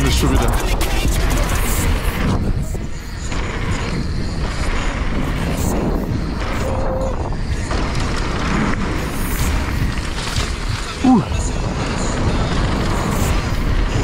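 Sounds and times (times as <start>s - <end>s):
bike rattling: 0.0s - 14.0s
wind buffeting microphone: 0.0s - 14.0s.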